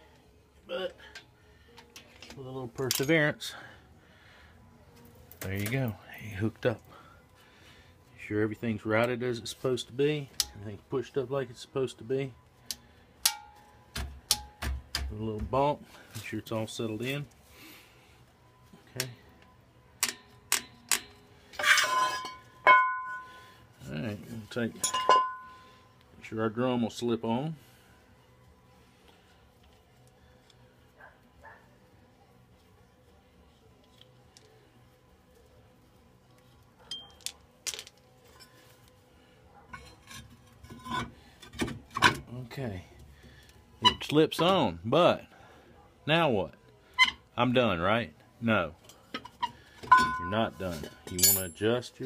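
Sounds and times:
metal scrape with ring: 21.1s - 23.4s, 39.7s - 42.1s, 48.9s - 51.6s
metal clank ringing: 21.6s - 23.3s, 24.8s - 25.5s, 49.9s - 51.6s.

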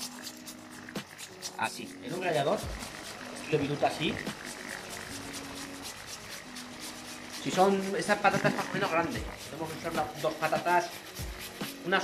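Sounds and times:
potato grating on metal grater: 0.0s - 12.0s.

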